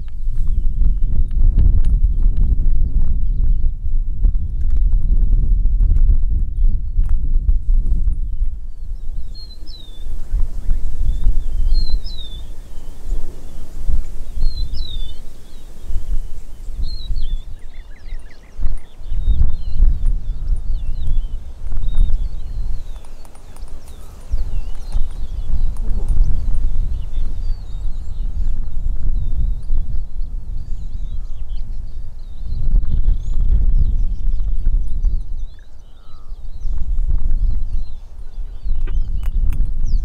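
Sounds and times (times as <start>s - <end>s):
wind buffeting microphone: 0.0s - 40.0s
birds chirping: 6.3s - 40.0s
faint clicks: 22.8s - 26.2s.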